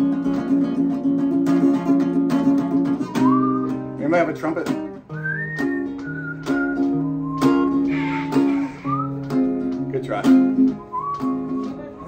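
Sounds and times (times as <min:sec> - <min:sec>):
acoustic guitar strumming chords: 0:00.0 - 0:12.0
whistled melody: 0:02.8 - 0:04.0, 0:05.1 - 0:09.7, 0:10.6 - 0:12.0.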